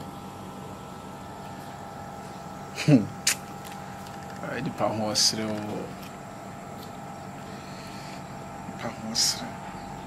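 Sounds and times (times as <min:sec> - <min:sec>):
steady background hum: 0:00.0 - 0:10.0
man laughing: 0:02.8 - 0:03.1.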